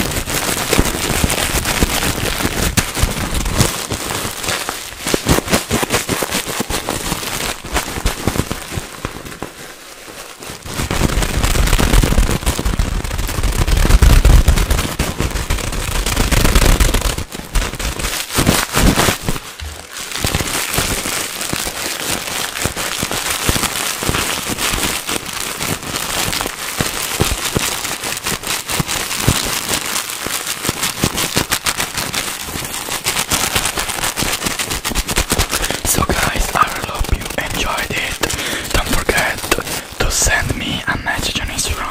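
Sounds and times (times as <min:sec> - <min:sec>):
plastic packaging crinkling: 0:00.0 - 0:41.9.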